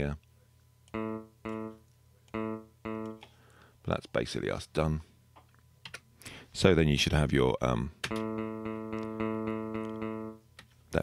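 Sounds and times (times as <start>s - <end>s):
clean electric guitar repeated note: 0.9s - 3.2s, 8.1s - 10.4s.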